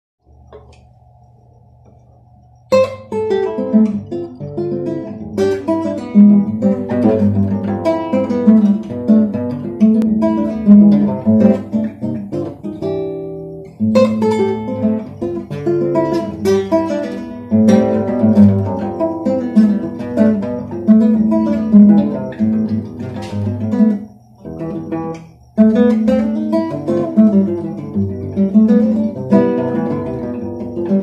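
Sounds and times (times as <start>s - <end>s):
acoustic guitar latin jazz piece: 1.7s - 31.0s.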